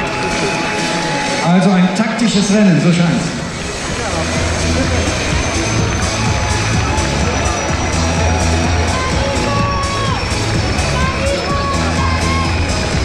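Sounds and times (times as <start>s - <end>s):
crowd cheering: 0.0s - 13.0s
music over loudspeakers: 0.0s - 13.0s.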